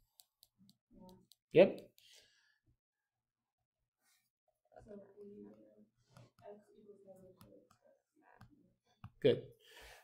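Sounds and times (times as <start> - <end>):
stylus tapping on tablet screen: 0.0 - 2.1, 7.3 - 9.2.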